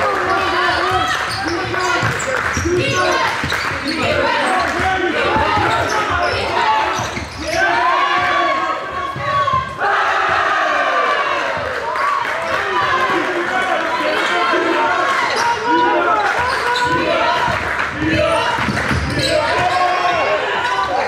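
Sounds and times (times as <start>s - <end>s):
players' voices: 0.0s - 21.0s
sneakers squeaking: 0.1s - 9.8s, 14.2s - 21.0s
basketball bouncing: 0.8s - 7.3s, 16.8s - 20.1s.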